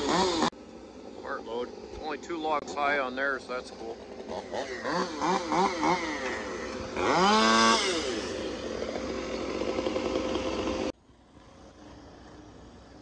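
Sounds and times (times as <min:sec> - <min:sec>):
diesel truck engine revving: 0:00.0 - 0:00.6, 0:01.2 - 0:11.0.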